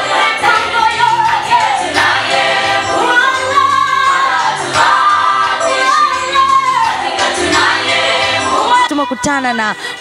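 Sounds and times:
woman singing: 0.0s - 1.6s, 8.4s - 10.0s
gospel choir singing: 0.0s - 9.0s.

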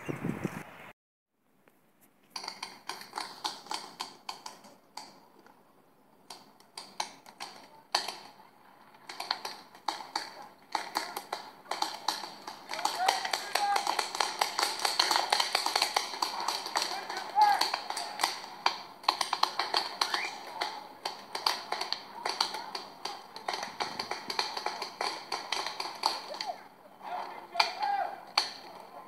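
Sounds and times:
paintball markers firing: 2.4s - 5.6s, 6.2s - 29.0s
voices calling out: 4.5s - 29.0s.

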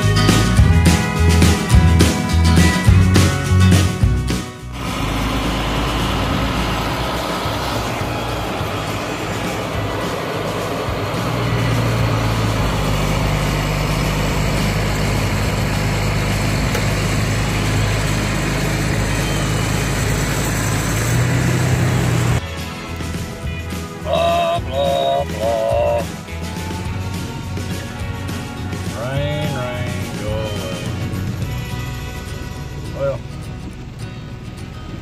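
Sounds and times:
music: 0.0s - 15.5s, 16.7s - 35.0s
diesel engine running under load: 0.0s - 35.0s
logs being loaded onto truck: 4.6s - 23.4s.

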